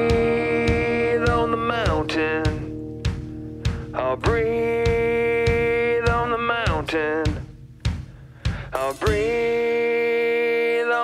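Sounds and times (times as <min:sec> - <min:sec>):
drum kit steady beat: 0:00.0 - 0:10.0.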